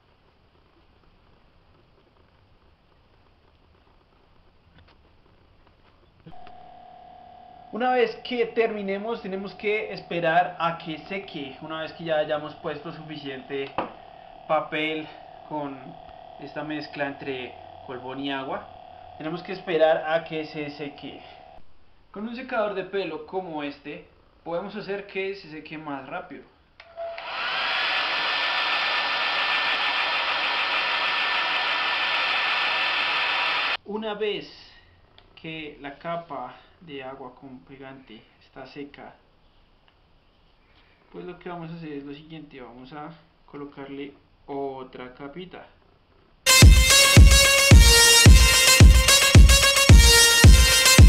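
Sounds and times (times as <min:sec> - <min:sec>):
steady tone: 0:06.3 - 0:21.6, 0:46.5 - 0:51.0
hair dryer running: 0:11.0 - 0:19.6, 0:27.1 - 0:33.8.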